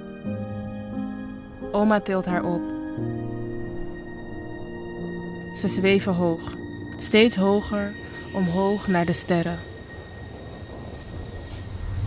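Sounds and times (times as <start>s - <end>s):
low rumbling whoosh of air: 9.7s - 12.0s.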